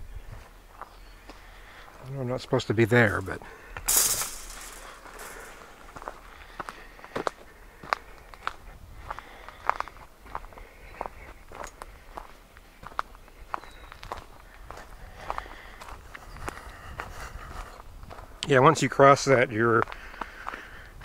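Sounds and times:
footsteps crunching on forest trail: 0.0 - 2.3, 4.6 - 18.4, 19.8 - 20.8.

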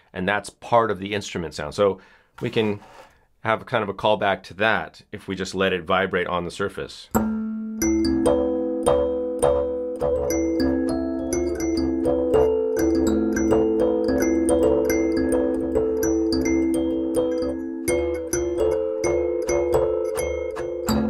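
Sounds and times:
kalimba melody: 7.2 - 21.0.

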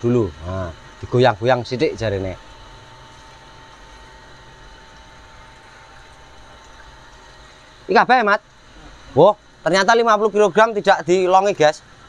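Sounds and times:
feed-mixing machine humming: 0.0 - 12.0.

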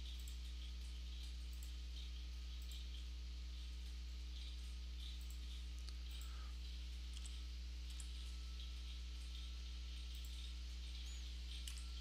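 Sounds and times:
computer mouse clicks: 0.0 - 3.1, 4.4 - 12.0
low electrical hum: 0.0 - 12.0.

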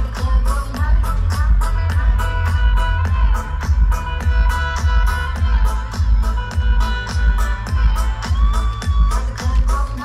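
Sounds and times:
loud electronic dance music: 0.0 - 10.0
pounding bass beat: 0.0 - 10.0.

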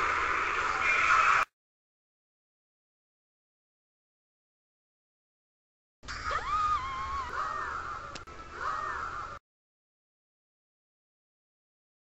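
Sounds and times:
cartoon voices crying out: 6.1 - 9.4.

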